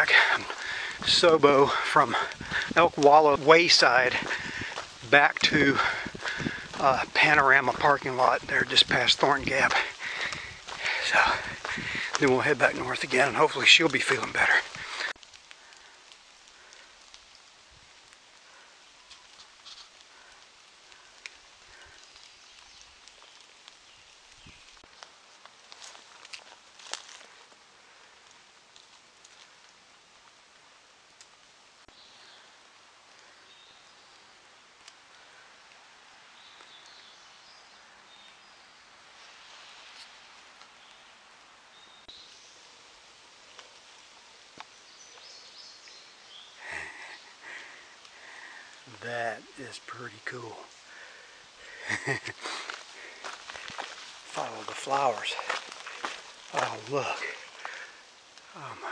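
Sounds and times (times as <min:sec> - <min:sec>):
footsteps on dirt trail: 0:00.0 - 0:15.3, 0:21.7 - 0:27.6, 0:50.2 - 0:58.9
rustling leaves and brush: 0:00.0 - 0:58.9.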